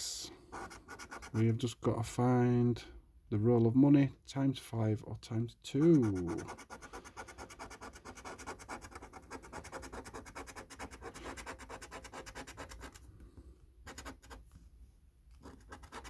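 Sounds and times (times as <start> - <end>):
coin scraping scratch card: 6.0 - 13.0, 13.9 - 14.4, 15.4 - 16.0.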